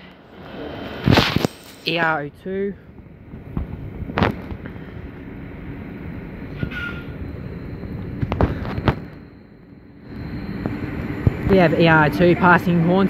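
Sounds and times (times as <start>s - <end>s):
train rumbling: 0.0s - 13.0s
high squeal: 6.4s - 11.6s.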